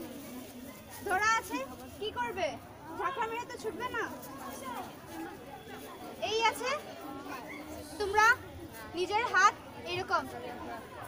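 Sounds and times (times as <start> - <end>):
group chatter: 0.0 - 11.0.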